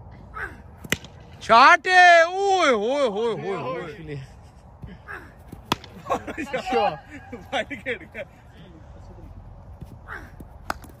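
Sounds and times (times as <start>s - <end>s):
bat hitting ball: 0.8s - 1.4s, 5.5s - 6.2s, 10.6s - 11.0s.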